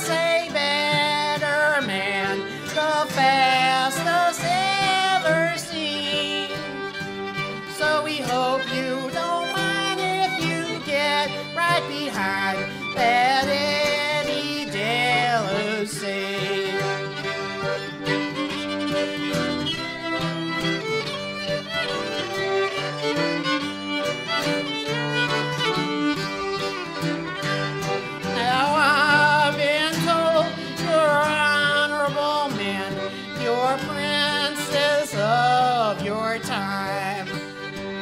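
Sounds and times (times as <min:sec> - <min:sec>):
fiddle melody: 0:00.0 - 0:38.0
piano accordion chords: 0:00.0 - 0:38.0
strummed acoustic guitar: 0:00.0 - 0:38.0.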